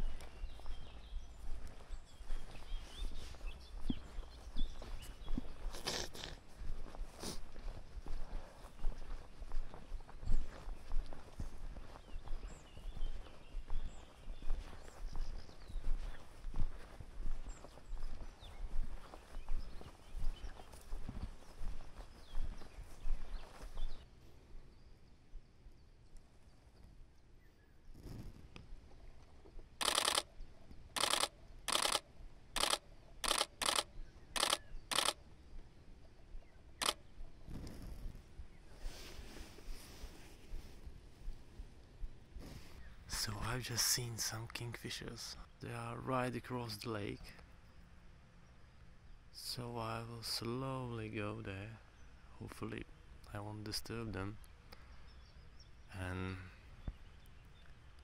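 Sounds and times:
footsteps through mown grass: 0:00.0 - 0:24.1, 0:38.7 - 0:43.3
camera shutter bursts: 0:29.8 - 0:30.3, 0:30.9 - 0:35.2, 0:36.8 - 0:37.0.

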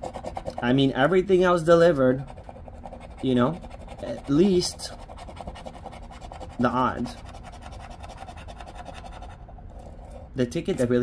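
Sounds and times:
scratching lottery ticket: 0:00.0 - 0:11.0.

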